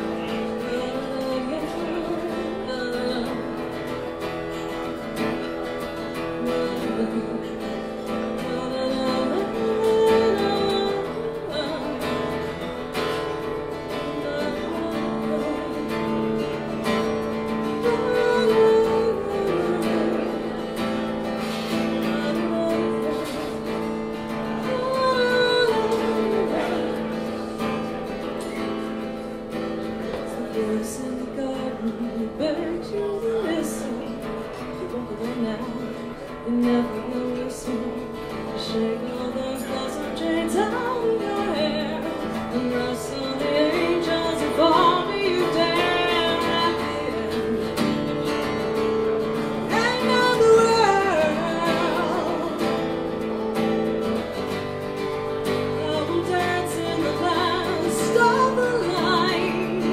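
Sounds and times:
acoustic guitar strumming: 0:00.0 - 0:59.9
person singing folk song: 0:00.0 - 0:59.9.

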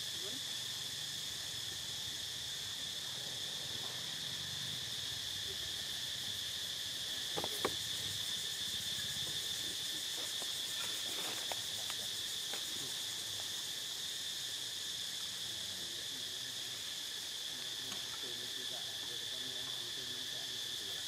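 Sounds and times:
insects droning: 0:00.0 - 0:21.0.

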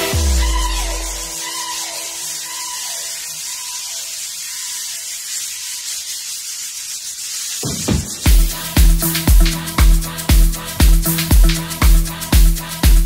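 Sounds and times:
deep bass: 0:00.0 - 0:01.2, 0:08.3 - 0:13.0
hiss-like noise wash: 0:00.0 - 0:12.8.

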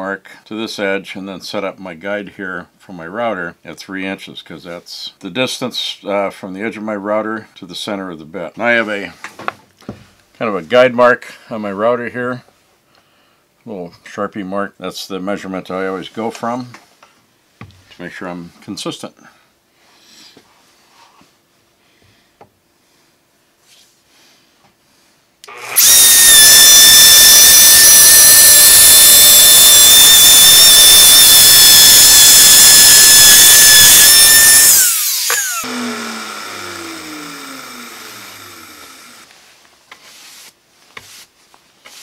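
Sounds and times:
router cutting wood: 0:25.4 - 0:39.3.

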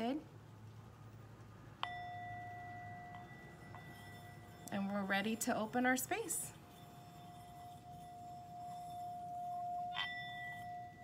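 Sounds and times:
singing bowl ringing: 0:01.8 - 0:11.0.

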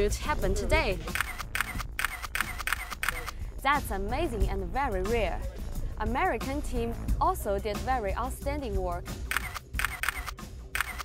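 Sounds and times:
camera shutter clicks: 0:01.1 - 0:03.4, 0:09.3 - 0:11.0.

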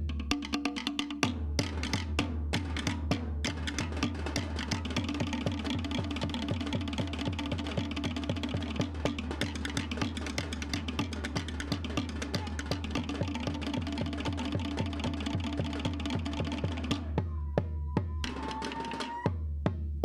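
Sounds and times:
deep drum beat: 0:00.0 - 0:18.7, 0:19.3 - 0:20.0.

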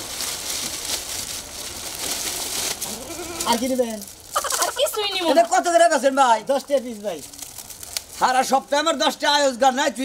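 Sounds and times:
plastic bag rustling: 0:00.0 - 0:08.8.

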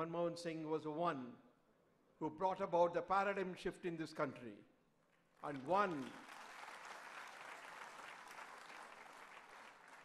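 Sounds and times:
audience applauding: 0:05.4 - 0:10.0.

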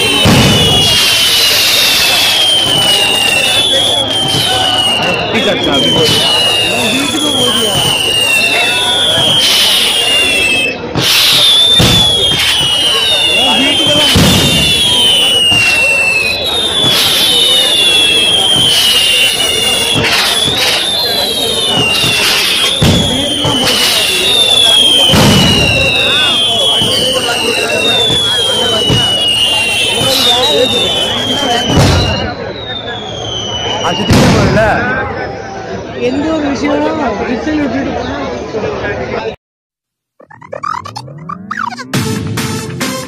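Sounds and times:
loud firework bangs: 0:00.0 - 0:32.5, 0:33.1 - 0:35.0
falling firework whistles: 0:00.0 - 0:35.5, 0:40.3 - 0:41.9
hiss of firework sparks: 0:06.0 - 0:32.0.

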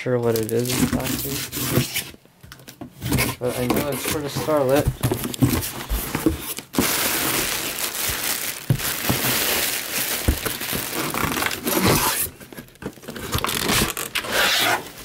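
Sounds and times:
plastic packaging crinkling: 0:00.2 - 0:02.0, 0:03.4 - 0:14.3.

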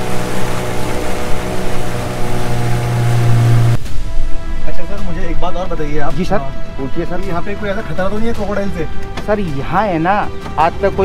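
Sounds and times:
motorboat engine running: 0:00.0 - 0:04.4
water rushing: 0:00.0 - 0:06.8
wind: 0:00.0 - 0:11.0.

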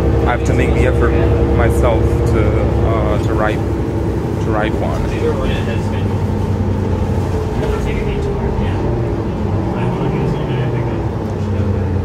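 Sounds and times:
bus diesel engine drone: 0:00.0 - 0:12.0
passengers chatting faintly: 0:00.0 - 0:12.0
road noise: 0:00.0 - 0:12.0.

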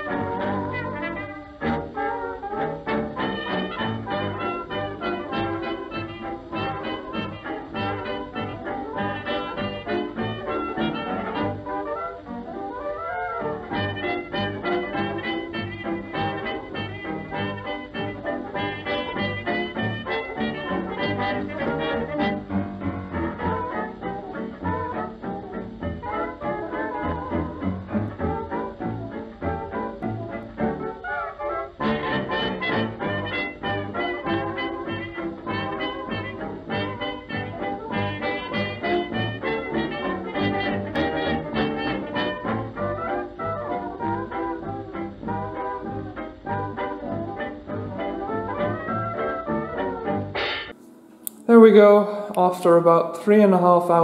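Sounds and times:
swing music with brass: 0:00.0 - 0:50.8.

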